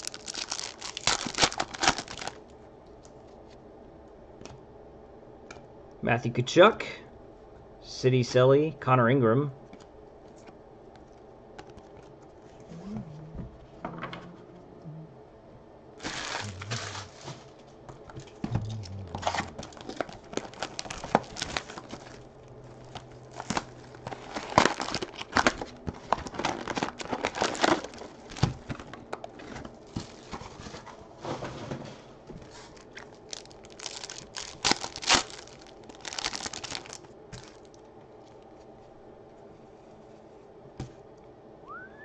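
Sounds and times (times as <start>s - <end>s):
foil wrappers tearing and crumpling: 0.0s - 2.4s, 16.0s - 17.6s, 19.2s - 30.7s, 32.5s - 37.8s.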